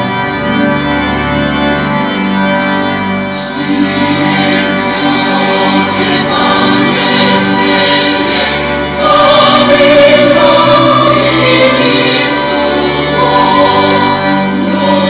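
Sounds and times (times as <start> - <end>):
organ accompaniment: 0.0 - 15.0
church choir singing a hymn: 3.3 - 15.0.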